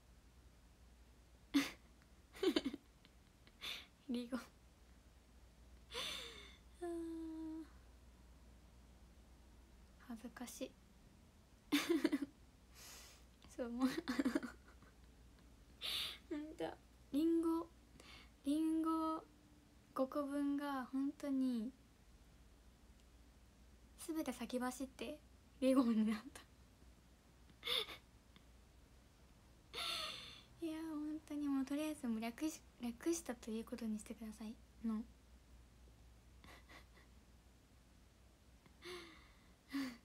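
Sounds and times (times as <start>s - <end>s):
young woman's breathy laugh: 5.9s - 6.6s, 11.7s - 13.2s, 36.4s - 37.2s
woman humming a note: 6.8s - 7.7s.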